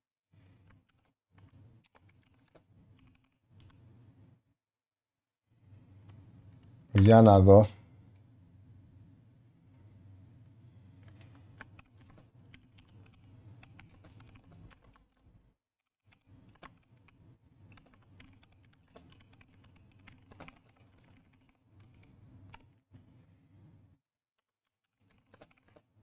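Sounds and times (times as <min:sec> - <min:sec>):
typing on keyboard: 0:00.6 - 0:03.8, 0:11.0 - 0:15.4, 0:16.0 - 0:22.7, 0:24.9 - 0:26.0
low steady hum: 0:05.6 - 0:15.5.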